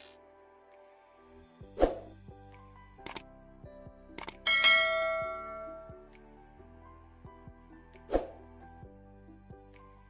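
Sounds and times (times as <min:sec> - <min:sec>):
soft background music: 0:00.0 - 0:10.0
quick ticks: 0:03.0 - 0:03.2, 0:04.2 - 0:04.4
bright bell-like chime: 0:04.5 - 0:06.0.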